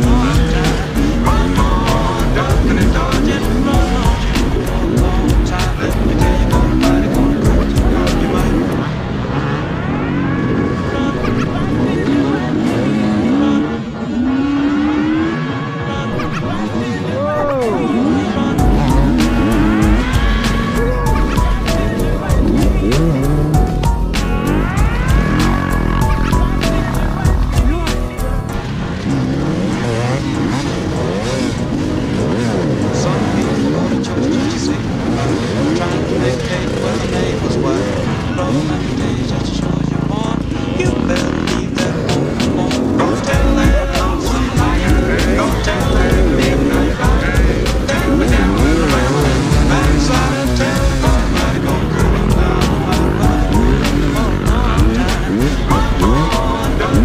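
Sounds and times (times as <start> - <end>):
dirt bike engine revving: 0.0 - 57.0
other dirt bikes running: 0.0 - 57.0.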